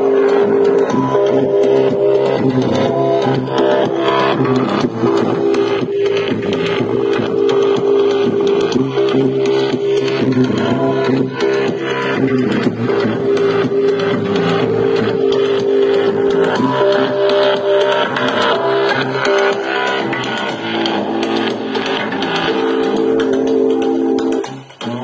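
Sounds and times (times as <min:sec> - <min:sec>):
music with long held notes: 0:00.0 - 0:25.0.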